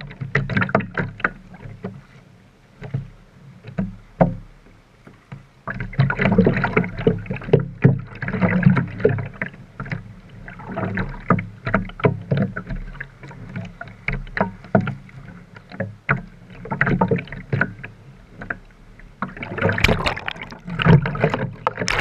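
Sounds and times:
seawater splashing and sloshing: 0:05.0 - 0:22.0
swimming stroke splashes: 0:19.4 - 0:22.0.

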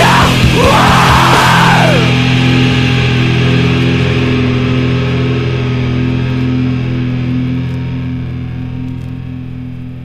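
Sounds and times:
electric guitar chord ringing: 0:00.0 - 0:10.0.

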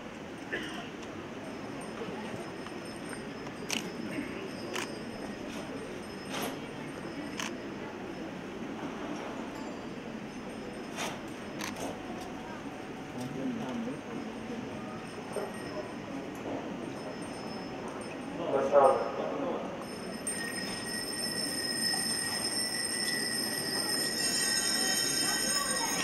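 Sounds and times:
crowd murmur: 0:00.0 - 0:26.0
small hand bells ringing: 0:01.4 - 0:07.4, 0:16.8 - 0:18.3, 0:19.8 - 0:26.0.

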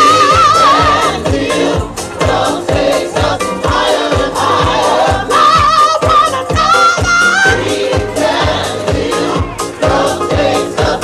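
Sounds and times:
house music: 0:00.0 - 0:11.0
kick drum: 0:00.0 - 0:11.0
women singing: 0:00.0 - 0:11.0.

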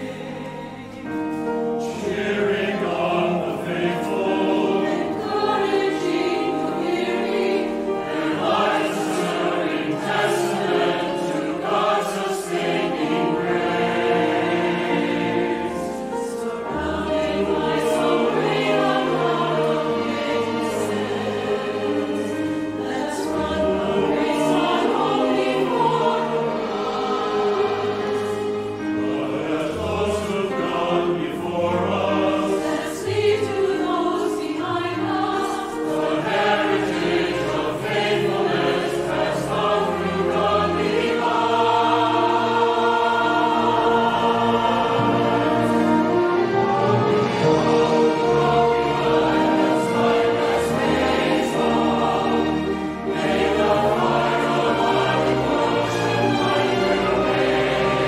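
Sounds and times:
mixed choir singing a hymn: 0:00.0 - 0:58.0
orchestral strings and brass: 0:00.0 - 0:58.0.

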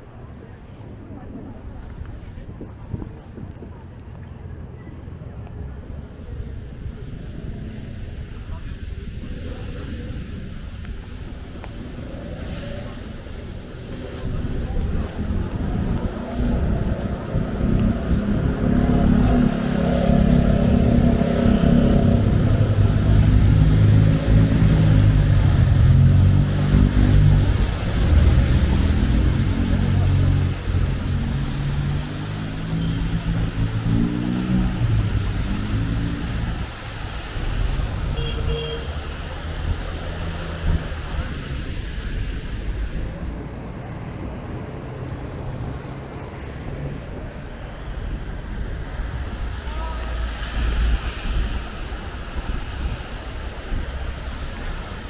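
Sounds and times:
rain and tyres on wet pavement: 0:00.0 - 0:55.0
heavy vehicle engine pulling away: 0:11.2 - 0:49.2.

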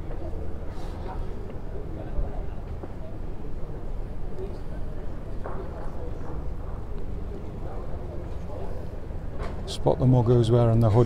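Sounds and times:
faint murmured voices: 0:00.0 - 0:11.0.

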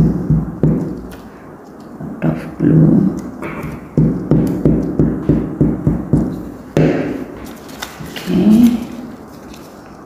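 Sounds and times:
hands patting paper on a tabletop: 0:00.0 - 0:01.9, 0:03.1 - 0:10.0.

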